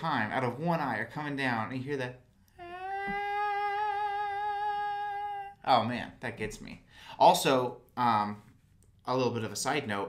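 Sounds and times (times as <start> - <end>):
man singing long high note: 2.6 - 5.6.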